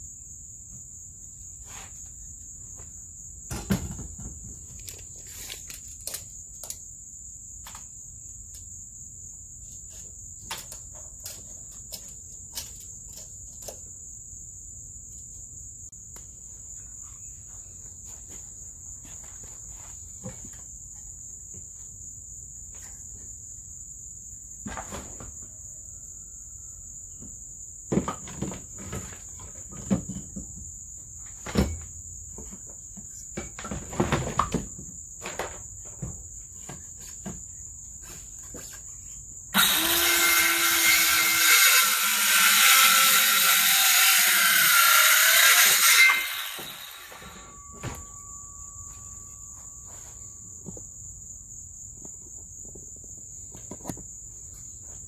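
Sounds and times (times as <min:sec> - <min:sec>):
crickets chirping: 0:00.0 - 0:43.4, 0:46.0 - 0:55.0
cordless drill driving screw: 0:39.6 - 0:47.2.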